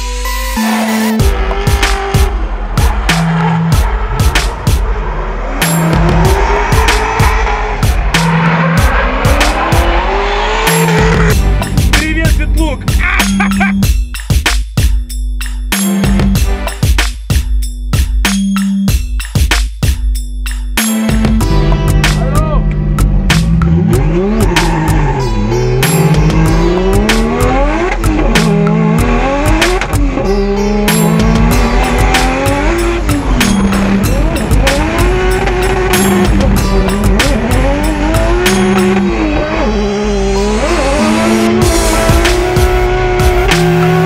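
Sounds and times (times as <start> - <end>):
music with steady beat: 0.0 - 5.0, 5.6 - 44.0
car engine revving hard: 1.2 - 12.0, 22.7 - 44.0.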